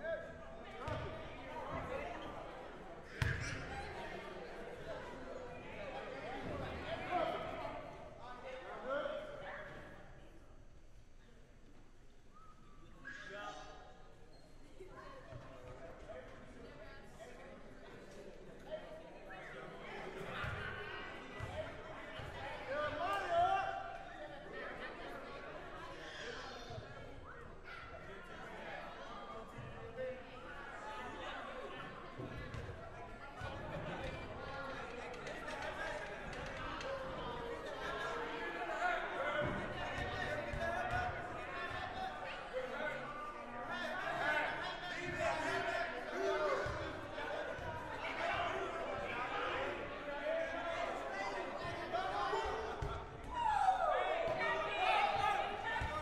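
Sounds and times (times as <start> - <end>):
indistinct chatter of voices: 0.0 - 56.0.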